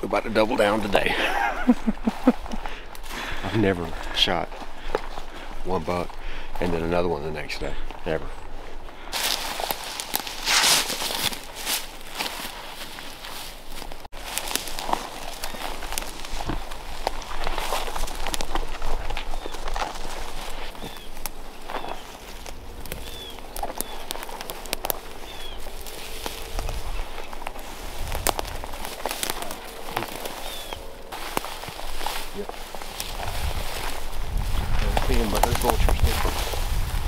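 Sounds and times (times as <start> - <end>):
footsteps walking: 0.1 - 37.0.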